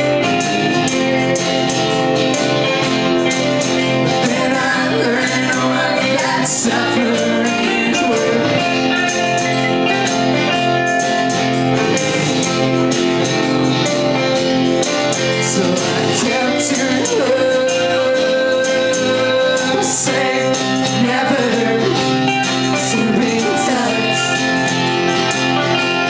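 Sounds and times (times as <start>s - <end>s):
person singing: 0.0s - 12.7s, 15.0s - 26.0s
bass guitar: 0.0s - 26.0s
drums: 0.0s - 26.0s
electric lead guitar: 0.0s - 26.0s
live folk-rock band: 0.0s - 26.0s
strummed acoustic guitar: 0.0s - 26.0s.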